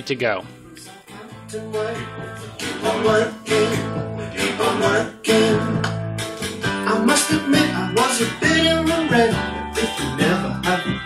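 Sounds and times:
strummed acoustic guitar song: 0.4 - 11.0
person singing: 0.6 - 11.0.

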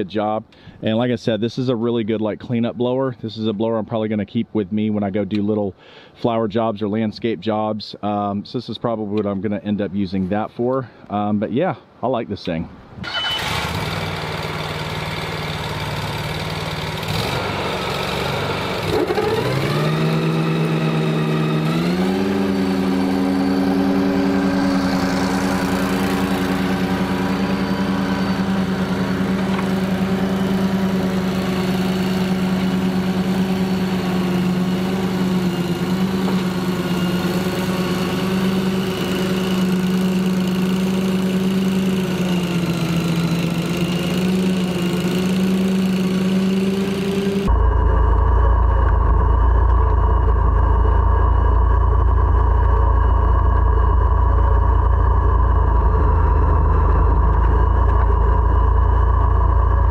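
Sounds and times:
riding mower engine running: 13.0 - 59.9.

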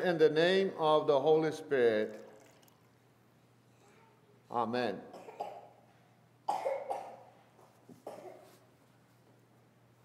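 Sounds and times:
person coughing: 6.5 - 7.3, 8.0 - 8.5.

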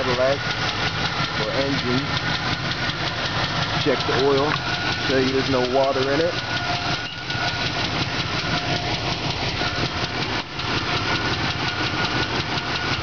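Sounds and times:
engine idling: 0.0 - 13.0
man speaking: 1.4 - 2.1, 3.8 - 6.4.

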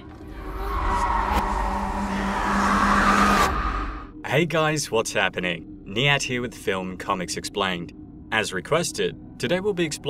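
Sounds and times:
noisy horror swell: 0.0 - 4.2.

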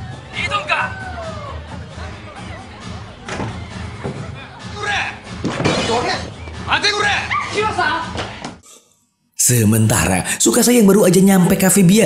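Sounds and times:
man shouting: 6.7 - 8.1.

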